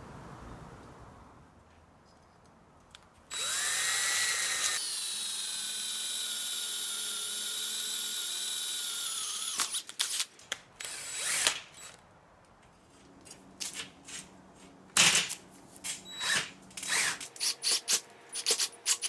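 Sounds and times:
cordless drill boring steel: 3.3 - 10.2, 10.8 - 12.0, 16.1 - 19.0.

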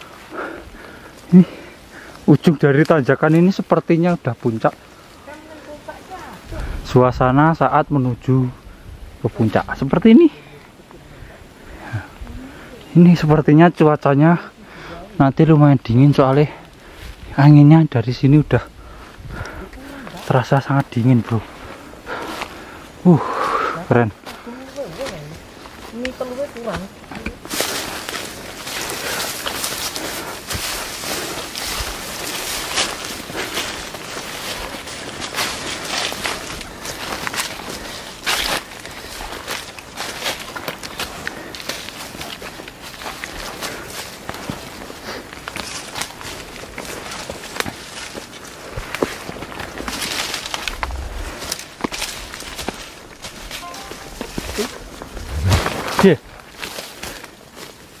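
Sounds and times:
footsteps on forest trail: 0.0 - 58.0
leaves and branches rustling: 0.0 - 58.0.

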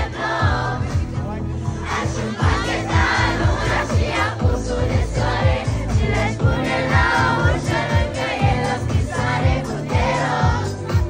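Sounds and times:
amplified pop song with drum beat: 0.0 - 11.0
crowd singing along: 0.0 - 11.0.

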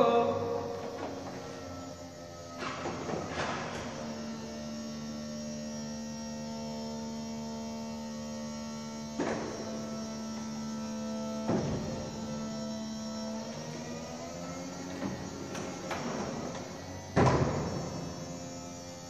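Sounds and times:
pump hum: 0.0 - 19.0.

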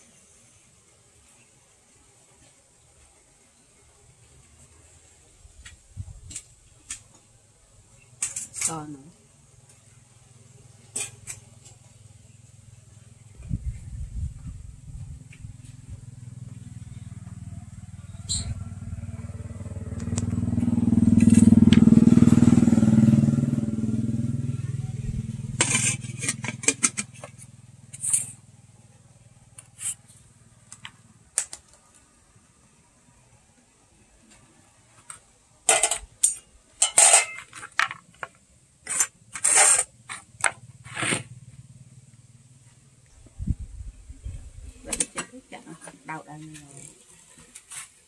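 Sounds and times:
motorcycle passing: 9.4 - 31.3, 39.8 - 44.8
metal spoon scraping glass bowl: 25.6 - 26.9.

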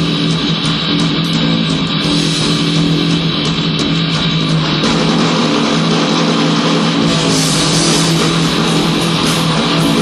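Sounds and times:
distorted electric guitars droning: 0.0 - 10.0.

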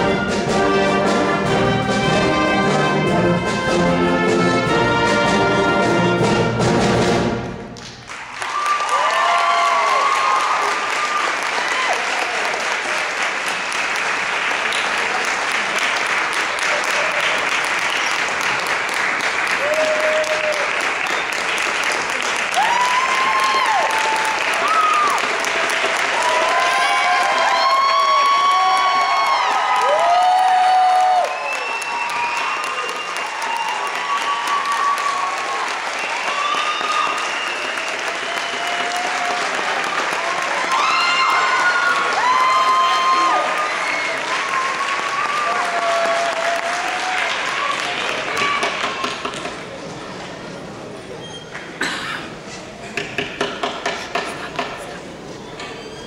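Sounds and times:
audience applauding: 7.8 - 50.0
shouts and cheers: 8.4 - 12.8, 19.5 - 20.9, 22.5 - 49.4.

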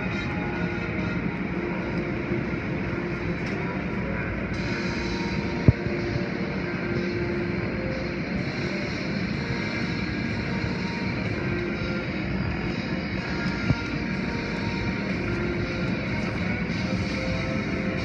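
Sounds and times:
music playing: 0.0 - 18.0.

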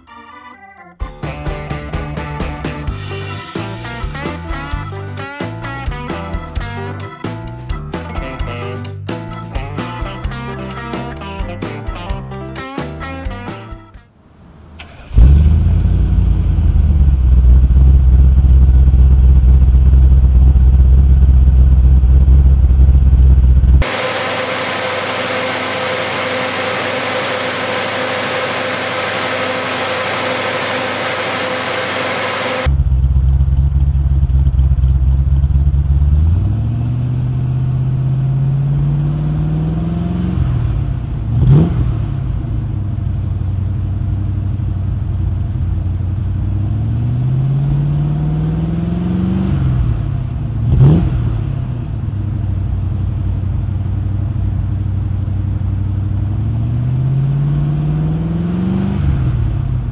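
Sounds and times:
car engine idling: 14.2 - 48.1, 49.9 - 56.7
engine revving: 14.4 - 33.4, 35.3 - 43.1, 46.4 - 52.2, 56.2 - 59.9.

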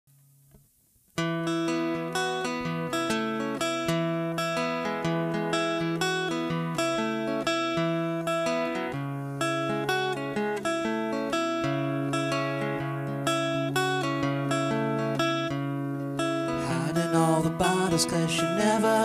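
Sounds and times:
acoustic guitar strumming: 1.2 - 19.0.

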